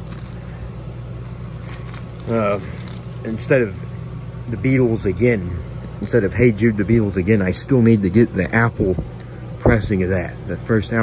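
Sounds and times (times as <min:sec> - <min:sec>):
record sleeve rustling: 0:00.0 - 0:00.6, 0:01.2 - 0:03.8
low room hum: 0:00.0 - 0:11.0.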